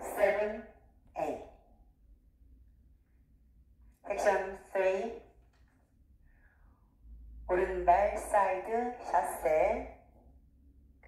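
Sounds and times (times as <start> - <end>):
woman counting aloud: 0.0 - 1.6
faint low hum: 0.0 - 11.0.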